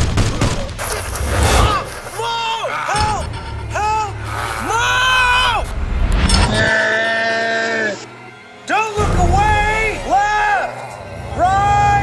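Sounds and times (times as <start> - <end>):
background music: 0.0 - 12.0
man yelling: 1.6 - 5.7, 8.7 - 12.0.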